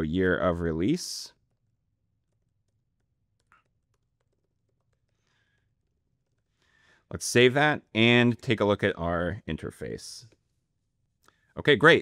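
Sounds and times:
computer keyboard typing: 1.4 - 6.6.

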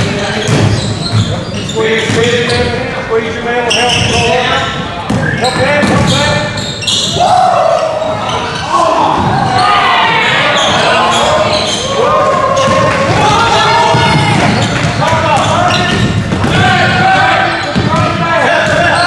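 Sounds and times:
many voices shouting: 7.1 - 15.7, 16.4 - 17.7.

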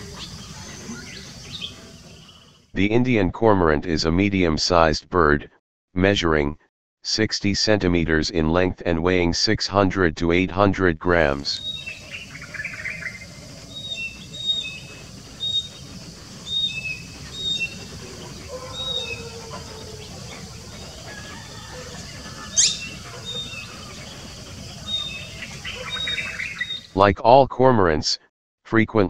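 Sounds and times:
bird chirping: 0.0 - 2.6, 11.2 - 27.0
sharp rising bird call: 11.6 - 26.9.

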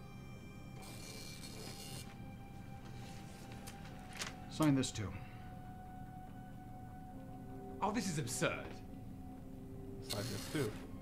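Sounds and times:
soft background music of held tones: 0.0 - 11.0.

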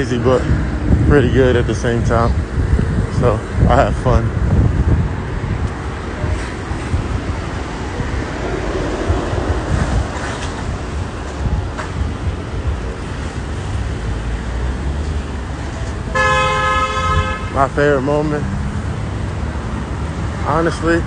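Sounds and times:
street traffic rumble: 0.0 - 21.0
vehicle horn: 16.1 - 17.7.

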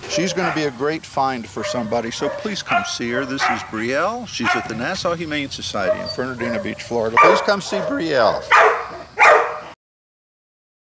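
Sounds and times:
dog barking: 0.1 - 0.8, 1.6 - 3.8, 4.4 - 4.9, 5.8 - 9.8.

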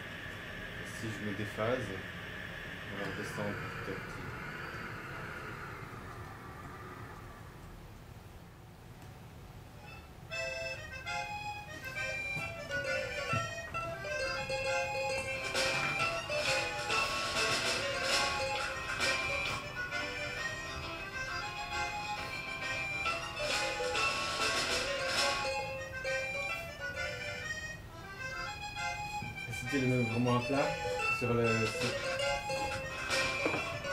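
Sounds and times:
hissy synthetic tone: 0.0 - 7.9
synthesised orchestral notes: 10.4 - 33.9.

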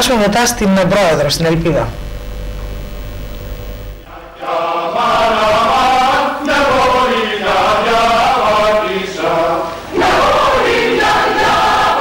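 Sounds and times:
low hum: 1.1 - 4.4
mixed choir singing: 4.0 - 12.0.

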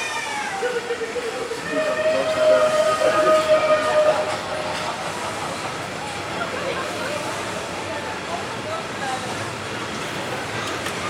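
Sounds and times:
train carriages running: 0.0 - 11.0
train whistle tone: 1.6 - 4.8.

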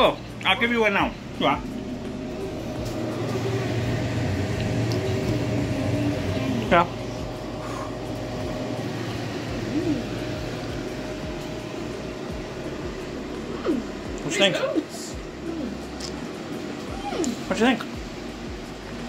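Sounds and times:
faint steady whine: 0.0 - 19.0
low mechanical hum: 0.0 - 19.0.

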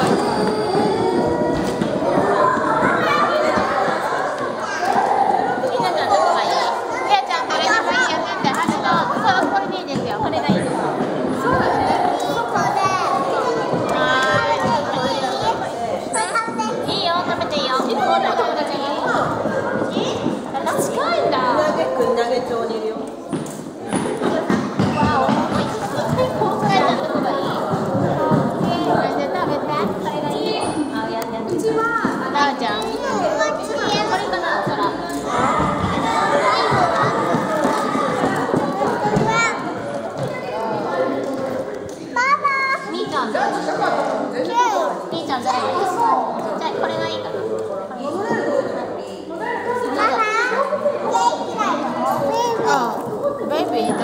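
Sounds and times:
children and adults chattering: 0.0 - 54.0.

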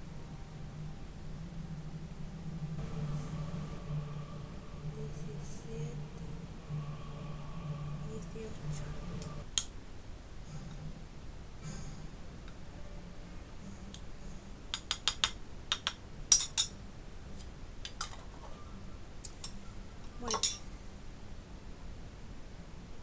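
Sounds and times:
metal spoon clinking on glass: 14.8 - 16.8, 20.2 - 20.7.

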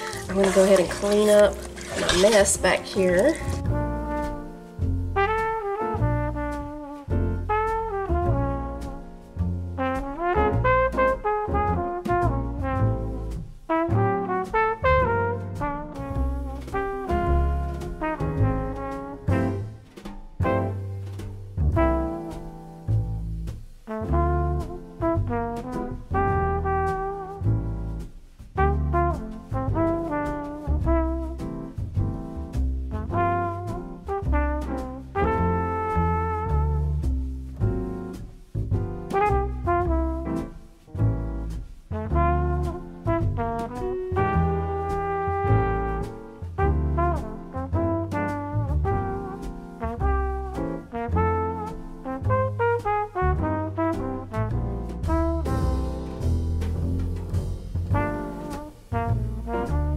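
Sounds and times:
jazzy instrumental music: 0.0 - 59.9.

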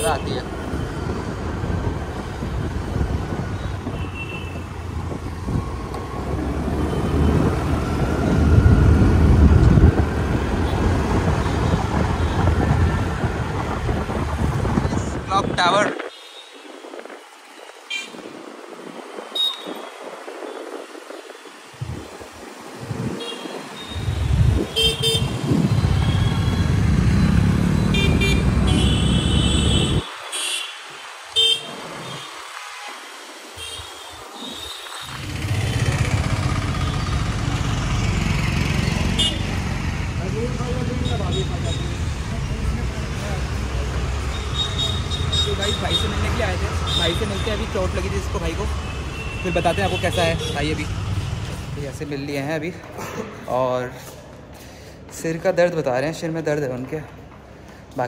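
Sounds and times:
street traffic: 0.0 - 58.0
wind buffeting microphone: 0.7 - 27.5
vehicle horn toots: 24.6 - 25.5.

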